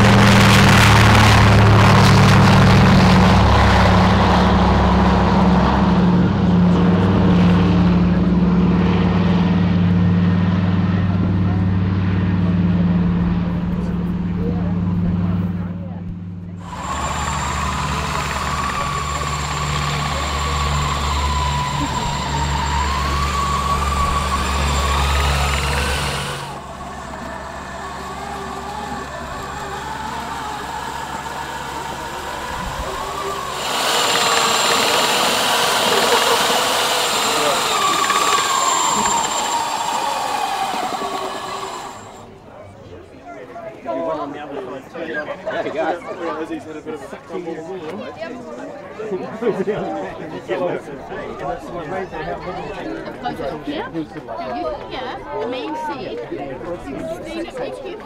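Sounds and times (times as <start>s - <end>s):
wavering motor whine: 0.0s - 9.0s, 16.6s - 42.4s
low hum: 0.0s - 42.7s
propeller plane engines droning: 0.0s - 43.2s.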